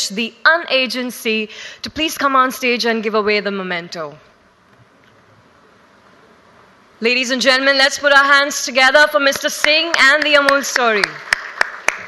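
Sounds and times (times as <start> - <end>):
woman's voice: 0.0 - 4.2, 7.0 - 11.2
faint room tone hiss: 0.0 - 12.0.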